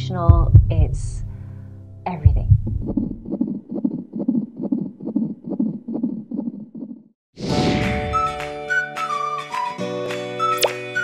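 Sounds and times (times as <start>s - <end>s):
fetal heartbeat on doppler: 0.3s - 1.4s, 2.2s - 7.0s.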